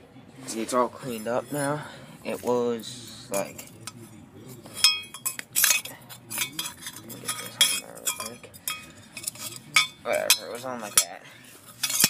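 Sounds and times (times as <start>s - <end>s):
metal parts clinking: 11.7s - 12.0s.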